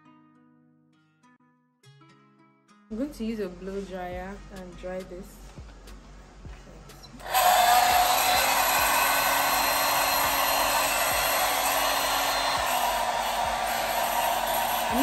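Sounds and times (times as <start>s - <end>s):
hair dryer running: 7.2s - 15.0s.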